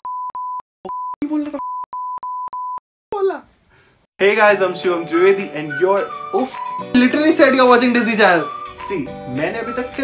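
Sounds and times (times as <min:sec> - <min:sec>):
person speaking: 0:01.2 - 0:01.7.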